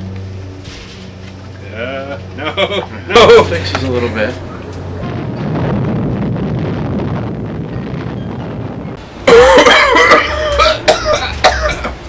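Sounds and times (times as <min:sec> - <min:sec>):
low rushing rumble: 0:03.1 - 0:12.0
blast: 0:05.0 - 0:09.4
men coughing: 0:09.2 - 0:12.0.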